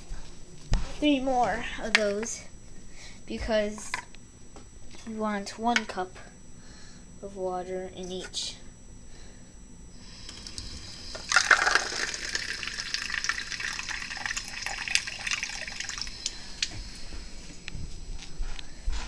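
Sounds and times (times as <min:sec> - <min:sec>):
tap water running into cup: 0:10.3 - 0:16.7.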